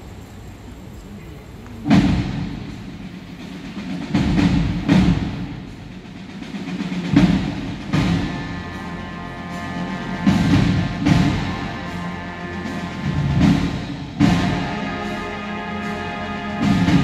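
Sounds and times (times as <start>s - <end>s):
booming drum hits: 1.8s - 8.8s.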